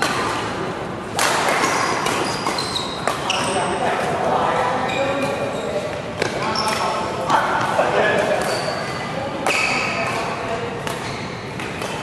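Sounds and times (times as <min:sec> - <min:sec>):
racket hitting shuttlecock: 0:00.0 - 0:04.2, 0:06.2 - 0:12.0
court shoes squeaking: 0:01.2 - 0:12.0.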